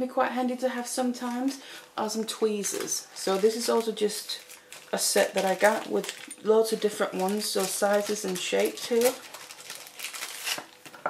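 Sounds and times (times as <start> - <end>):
plastic bag crinkling: 1.0 - 11.0.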